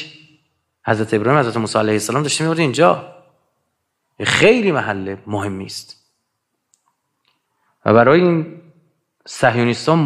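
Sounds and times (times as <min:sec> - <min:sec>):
man speaking: 0:00.9 - 0:03.2, 0:04.2 - 0:06.0.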